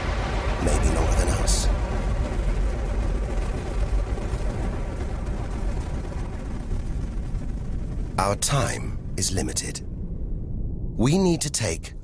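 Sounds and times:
deep rumbling drone: 0.0 - 12.0.

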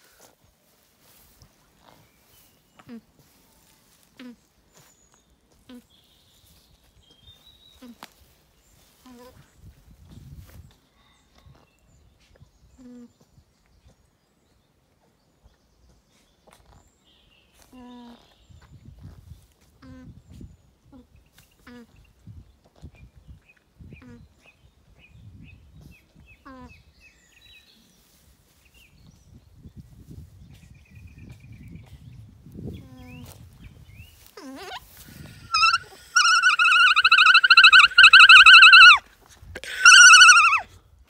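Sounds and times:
alpaca humming: 34.3 - 39.0, 39.6 - 40.7.

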